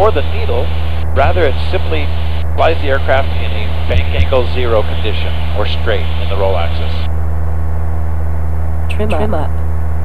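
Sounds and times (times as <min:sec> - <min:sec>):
cockpit voice alert: 0:00.0 - 0:07.0, 0:08.9 - 0:09.5
light aircraft engine drone: 0:00.0 - 0:10.0.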